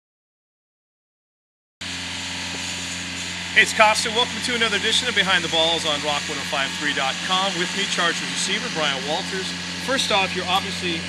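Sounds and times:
low mechanical hum with hiss: 1.9 - 11.0.

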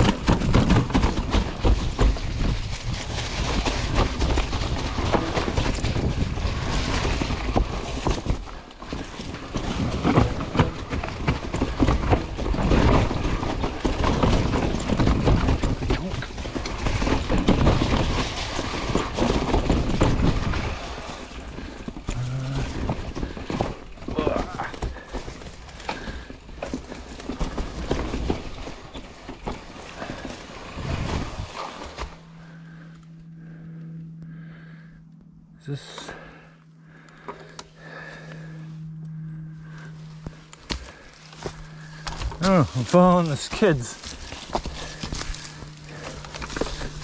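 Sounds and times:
bike knocking on rocks: 0.0 - 32.8, 39.2 - 47.0
tyres rolling through dry leaves: 0.0 - 34.9, 35.6 - 47.0
mountain bike rattling downhill: 0.0 - 47.0.

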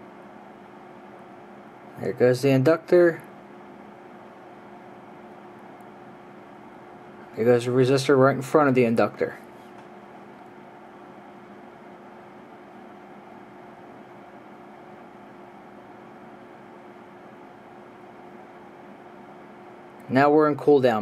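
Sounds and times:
oven humming with hiss: 0.0 - 21.0.

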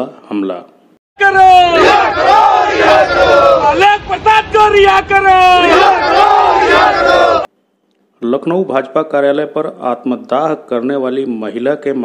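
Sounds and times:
crowd shouting slogans: 1.2 - 4.5, 5.3 - 7.5.

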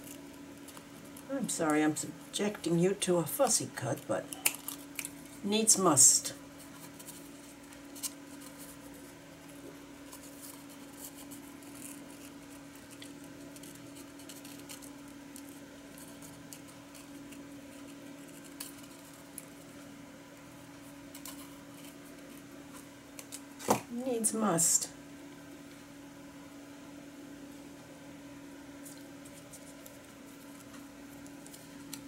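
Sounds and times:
steady low hum: 0.0 - 32.0.

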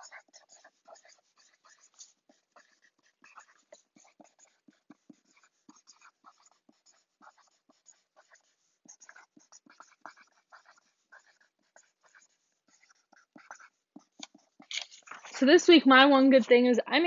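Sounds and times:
pen scratching on paper: 0.0 - 15.5.

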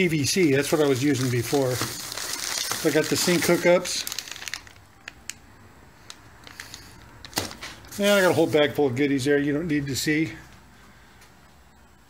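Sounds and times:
plastic packaging crinkling: 0.0 - 5.4, 6.0 - 8.8.

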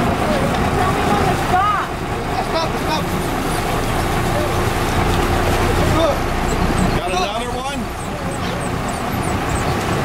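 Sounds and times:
boat engine running: 0.0 - 10.0
water rushing past hull: 0.0 - 10.0.

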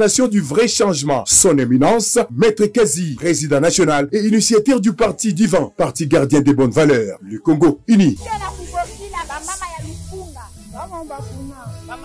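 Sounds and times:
background music with bass line: 5.4 - 12.0
crowd talking and calling out: 7.5 - 12.0.

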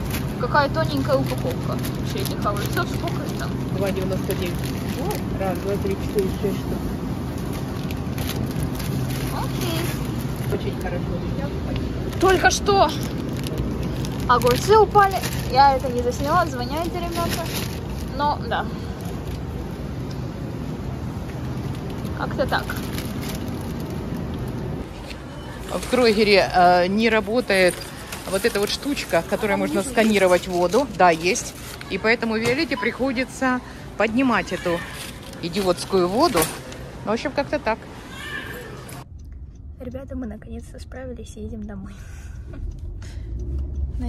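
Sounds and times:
engine and road rumble: 0.0 - 44.0
refrigeration cooling hum: 0.0 - 44.0
faint hum: 36.6 - 44.0.

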